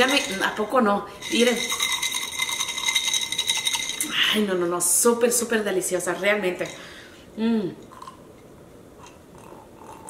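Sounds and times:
ice cubes rattling in a glass: 0.0 - 4.5.

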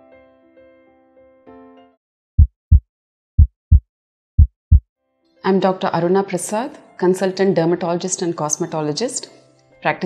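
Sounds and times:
heartbeat thumps: 2.4 - 2.8, 3.4 - 3.8, 4.4 - 4.8.

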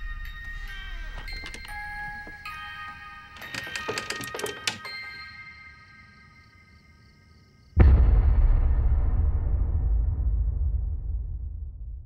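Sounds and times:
tinkling bell-like chimes: 0.0 - 7.4.

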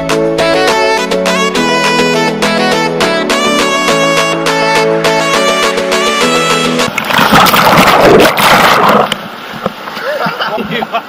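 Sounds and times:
water splashing: 6.8 - 10.5
water rushing and churning: 6.8 - 11.0.

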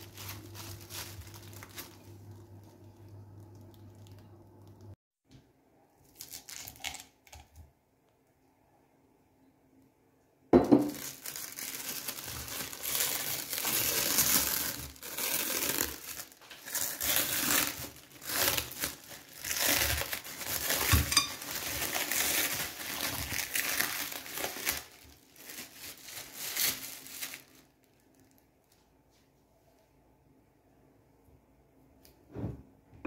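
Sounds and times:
cling film crinkling: 0.0 - 4.9, 6.1 - 7.2, 10.9 - 28.8.

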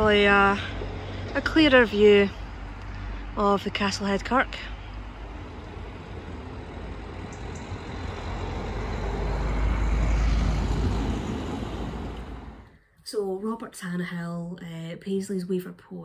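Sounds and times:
road vehicle passing by: 0.0 - 12.8.

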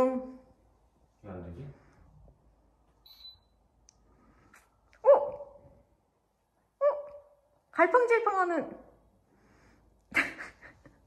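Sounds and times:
faint short high beep: 3.0 - 3.6.

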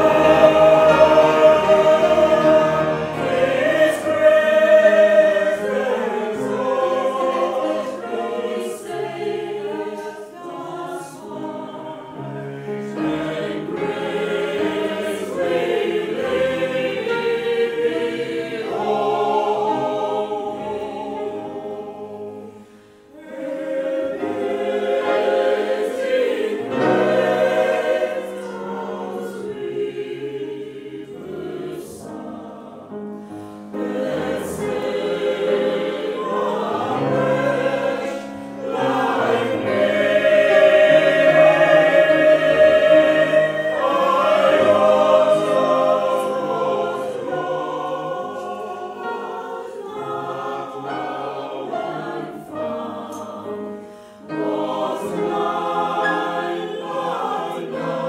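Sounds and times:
choir singing: 0.0 - 58.0
grand piano accompaniment: 0.0 - 58.0.

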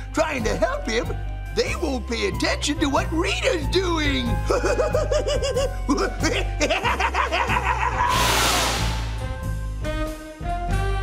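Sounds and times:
villain cackling laugh: 4.4 - 8.4
low music drone: 7.8 - 10.0
teleport rushing hiss: 8.1 - 9.2.

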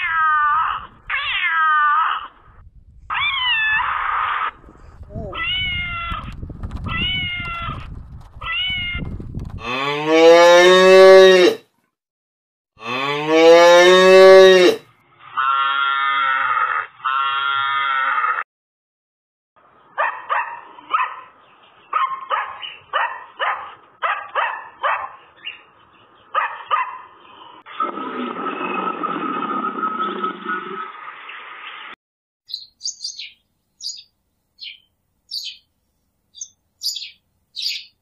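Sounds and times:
dog barking: 20.0 - 21.3, 21.9 - 25.2, 26.3 - 27.1.

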